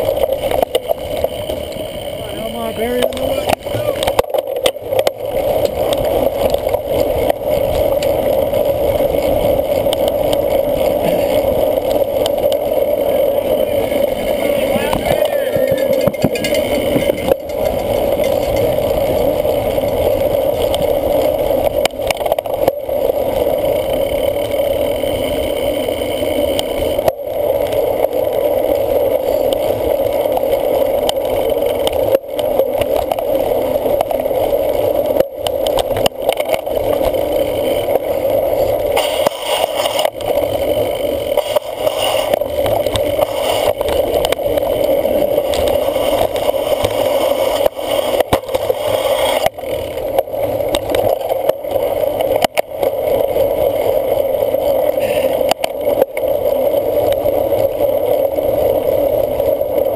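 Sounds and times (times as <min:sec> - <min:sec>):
wind and bike rolling rumble: 0:00.0 - 0:59.9.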